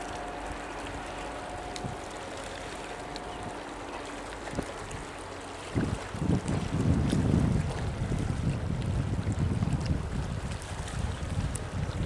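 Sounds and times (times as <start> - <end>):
small waves lapping on rocks: 0.0 - 12.0
wind buffeting microphone: 0.0 - 12.0.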